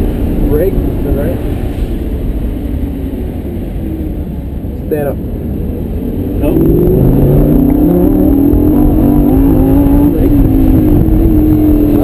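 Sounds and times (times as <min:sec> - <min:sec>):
car engine from inside cabin: 0:00.0 - 0:12.0.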